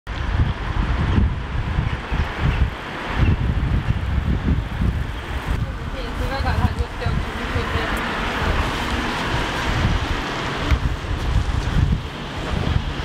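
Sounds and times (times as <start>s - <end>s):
wind buffeting microphone: 0.1s - 13.0s
passing city traffic hiss: 0.2s - 13.0s.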